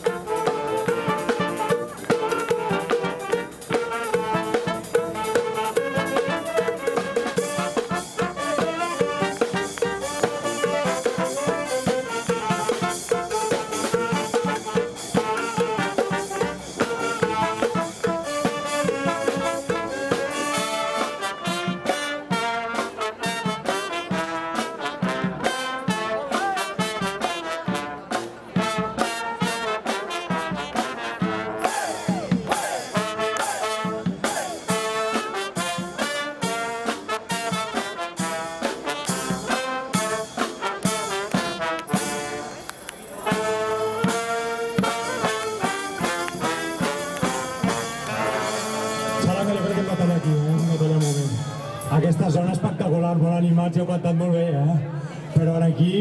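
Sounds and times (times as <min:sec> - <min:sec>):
street brass band playing: 0:00.0 - 0:56.0.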